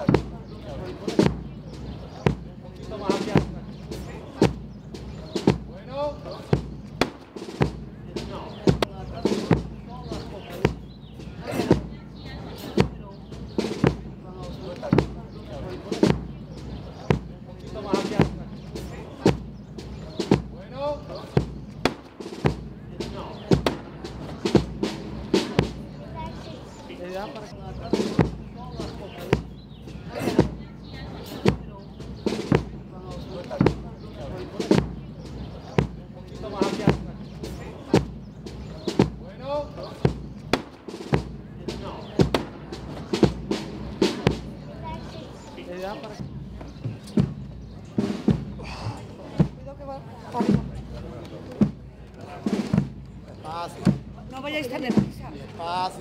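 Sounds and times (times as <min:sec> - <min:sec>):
crowd chatter: 0:00.0 - 0:56.0.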